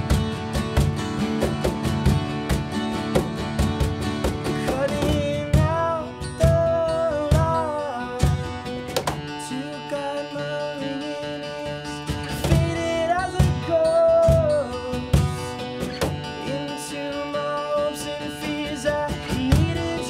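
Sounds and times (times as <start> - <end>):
acoustic guitar strummed and picked: 0.0 - 20.0
man singing: 4.5 - 20.0.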